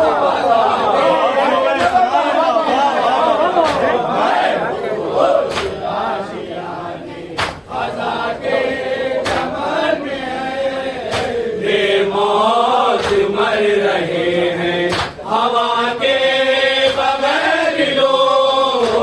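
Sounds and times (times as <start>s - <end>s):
men chanting in unison: 0.0s - 19.0s.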